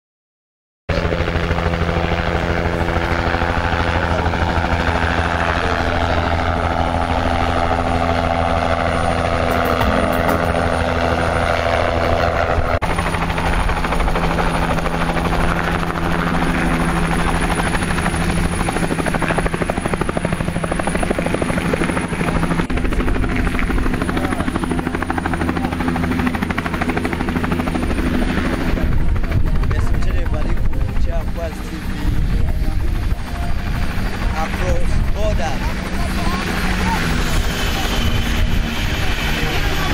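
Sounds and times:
helicopter rotor beat: 0.9 - 39.9
high turbine whine: 0.9 - 39.9
people's voices: 28.7 - 39.9.

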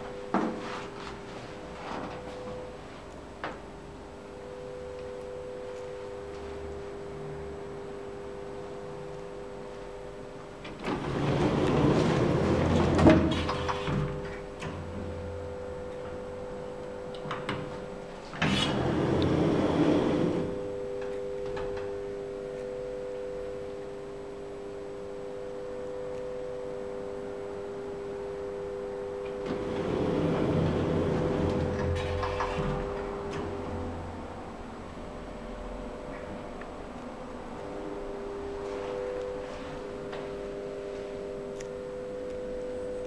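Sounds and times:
steady low hum: 0.0 - 43.0
sliding lift doors running: 10.6 - 15.2, 18.3 - 20.7, 29.3 - 34.4.

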